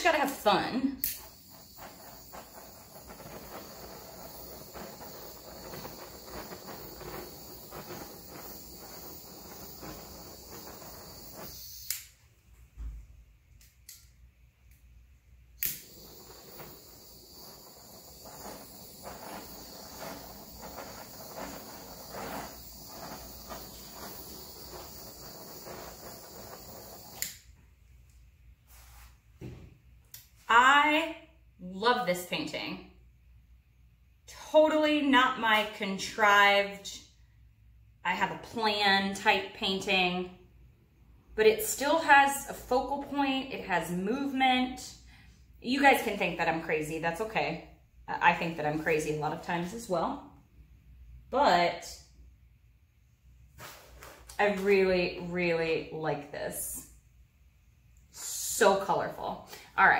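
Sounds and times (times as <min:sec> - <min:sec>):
butane torch hissing: 0:00.0 - 0:12.2, 0:15.4 - 0:27.6, 0:53.4 - 0:56.9
torch ignition click: 0:00.2 - 0:12.2, 0:15.6 - 0:27.4.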